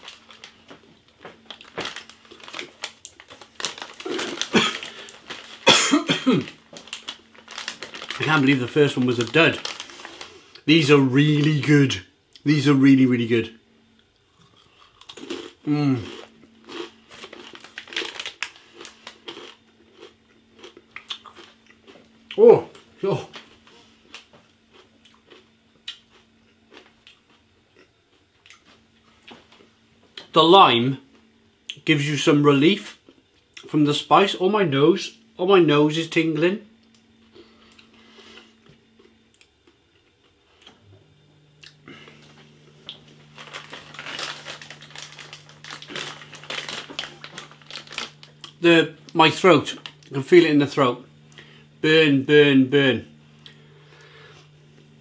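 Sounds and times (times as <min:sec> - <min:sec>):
chips crunching while chewing: 0:00.0 - 0:10.7, 0:14.2 - 0:23.4, 0:24.1 - 0:28.8, 0:42.8 - 0:48.6
loud cough: 0:04.5 - 0:04.9, 0:05.7 - 0:06.5
rough throat sounds: 0:15.6 - 0:16.3.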